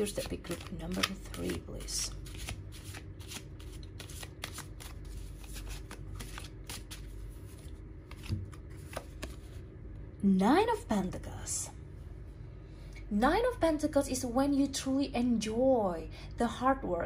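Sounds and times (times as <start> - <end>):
cards being shuffled: 0.0 - 9.6.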